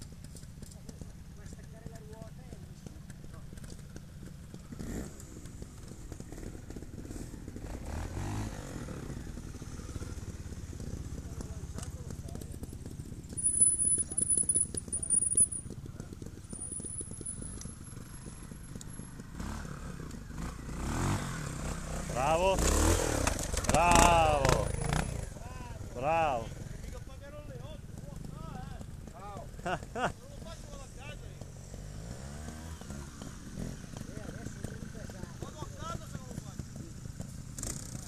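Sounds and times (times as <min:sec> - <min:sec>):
motorcycle engine at low revs: 0:00.0 - 0:38.0.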